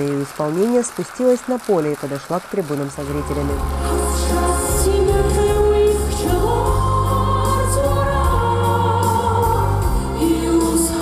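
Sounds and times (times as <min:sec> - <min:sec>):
orchestra playing: 0:03.0 - 0:10.9
choir singing: 0:03.8 - 0:11.0.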